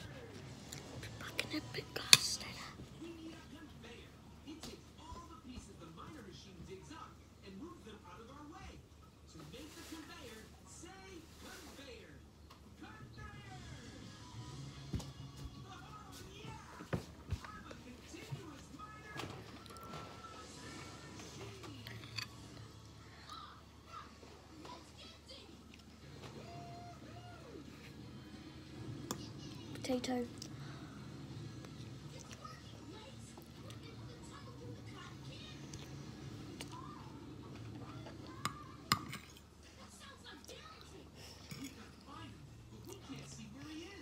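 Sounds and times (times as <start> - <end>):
quiet music: 0.0 - 44.0.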